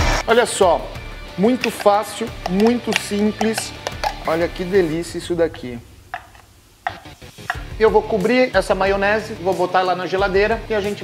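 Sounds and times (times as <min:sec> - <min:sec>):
utensil scraping plastic bowl: 0:01.5 - 0:04.4.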